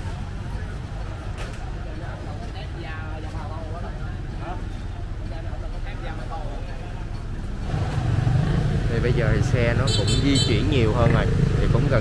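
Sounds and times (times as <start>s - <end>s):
motorbike engines: 0.0s - 12.0s
people chattering: 0.0s - 12.0s.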